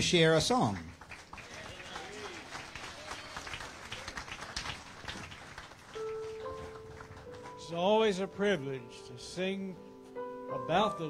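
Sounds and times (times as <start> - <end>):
scattered clapping: 0.4 - 7.6.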